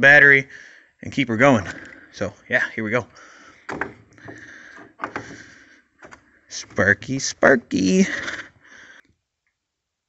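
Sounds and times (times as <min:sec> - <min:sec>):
person's voice: 0:06.5 - 0:08.5.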